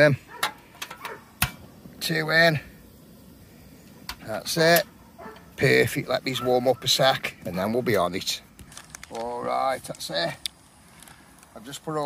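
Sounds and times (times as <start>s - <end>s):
gas cartridge clicking into stove: 0.4s - 1.7s, 4.0s - 5.5s.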